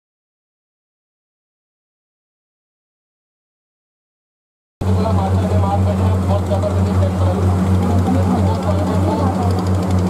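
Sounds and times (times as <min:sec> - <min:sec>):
boat engine drone: 0:04.8 - 0:10.0
people talking: 0:04.8 - 0:10.0.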